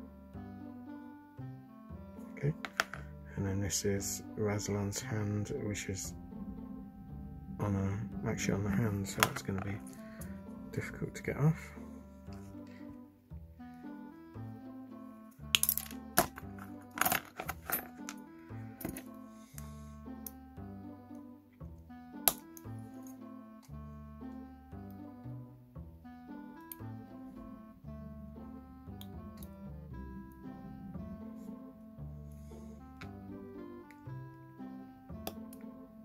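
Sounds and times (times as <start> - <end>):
plucked-string background music: 0.0 - 36.0.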